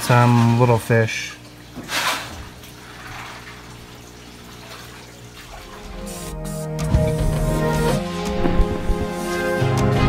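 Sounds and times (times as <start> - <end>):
water trickling: 0.0 - 6.1
faint low pump hum: 0.0 - 7.4.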